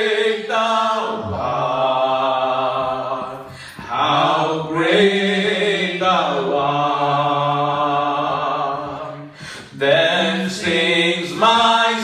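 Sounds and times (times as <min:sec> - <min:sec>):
men singing a slow hymn: 0:00.0 - 0:12.0.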